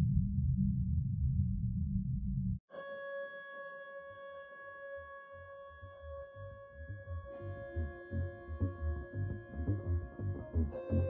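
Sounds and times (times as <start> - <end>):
soft low pulsing loop: 0.0 - 2.6, 6.9 - 11.0.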